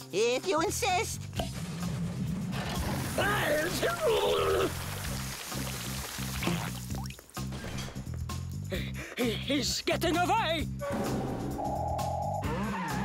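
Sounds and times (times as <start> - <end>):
rushing pouring hiss: 2.6 - 7.4
cartoon music with stepping bass: 10.0 - 13.0.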